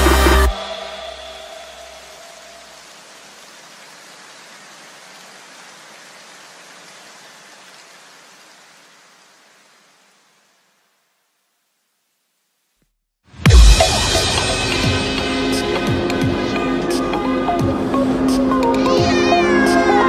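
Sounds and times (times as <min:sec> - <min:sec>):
even hiss: 0:00.0 - 0:11.3, 0:13.4 - 0:20.0.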